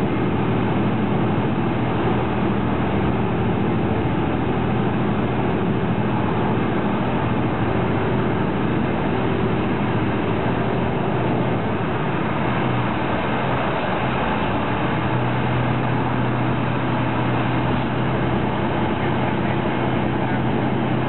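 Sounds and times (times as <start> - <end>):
train carriage rumble: 0.0 - 21.0.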